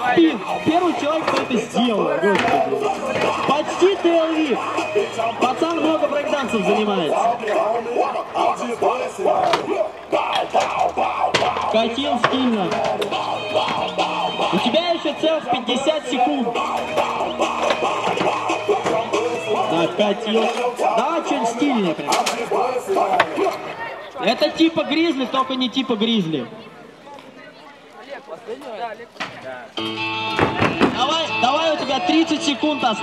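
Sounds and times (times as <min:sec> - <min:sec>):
people talking: 0:00.0 - 0:29.8, 0:30.5 - 0:33.0
scooter hitting concrete: 0:02.3 - 0:03.6, 0:10.4 - 0:13.1, 0:29.2 - 0:31.1.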